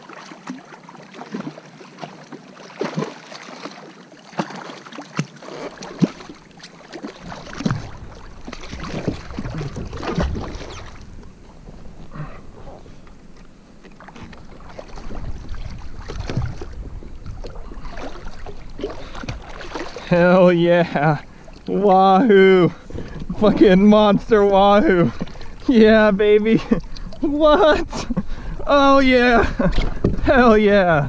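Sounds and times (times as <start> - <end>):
fish thrashing in water: 0.0 - 21.9
water splashing against kayak hull: 0.0 - 31.0
wind on microphone: 7.2 - 13.3, 14.2 - 19.8.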